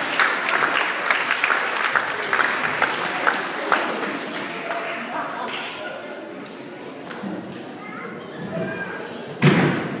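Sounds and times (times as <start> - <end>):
low audience voices: 0.0 - 10.0
loud thud ringing in a hall: 9.4 - 10.0.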